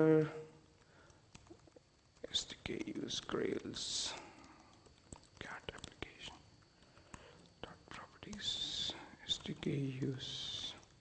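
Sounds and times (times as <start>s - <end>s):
computer keyboard typing: 1.0s - 11.0s
whispered muttering: 7.6s - 10.9s.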